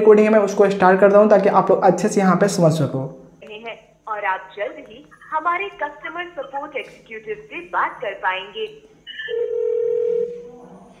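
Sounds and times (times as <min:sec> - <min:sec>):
high telephone beep: 0:09.1 - 0:10.4
low telephone line tone: 0:09.3 - 0:10.8.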